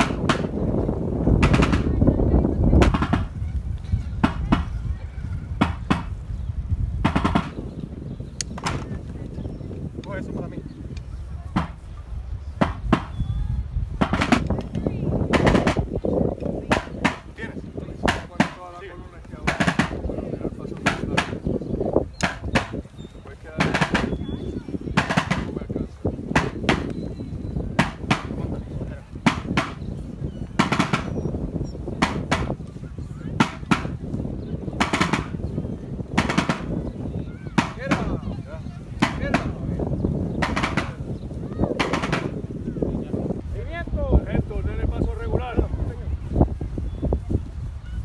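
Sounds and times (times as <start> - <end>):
side drum marching cadence: 0.0 - 6.3, 6.9 - 46.8
wind rumble on microphone: 0.0 - 48.0.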